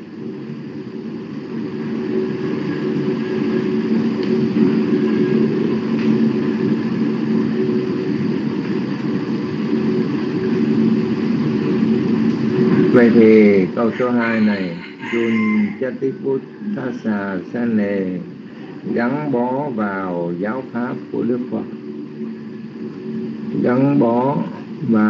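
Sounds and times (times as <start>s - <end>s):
engine drone with low hum: 0.0s - 25.0s.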